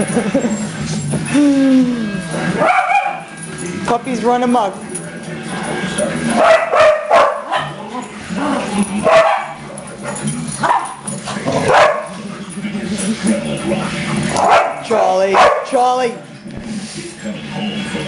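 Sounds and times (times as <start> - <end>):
small dogs barking and yipping: 2.6 - 3.5, 6.3 - 12.2, 14.4 - 15.8.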